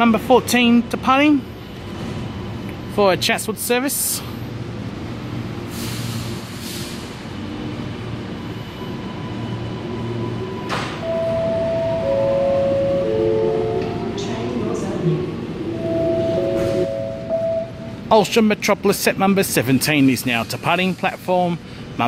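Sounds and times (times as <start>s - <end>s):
metro train hum and rumble: 0.0s - 22.0s
long electronic tones: 11.0s - 14.2s, 15.6s - 18.0s.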